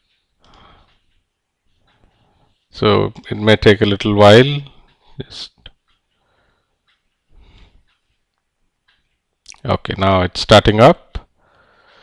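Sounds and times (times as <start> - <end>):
faint breath: 0.4 - 1.0, 6.2 - 7.9, 11.4 - 12.0.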